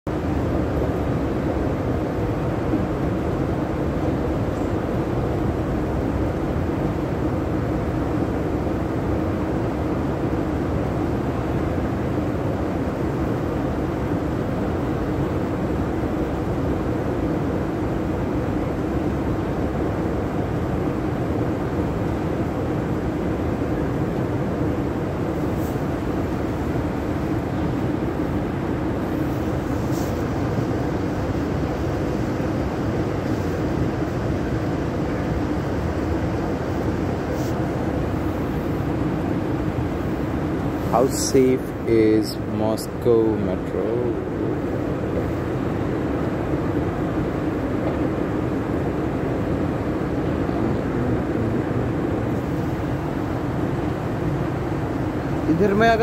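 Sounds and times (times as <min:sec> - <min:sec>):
escalator mechanical drone: 0:00.1 - 0:56.0.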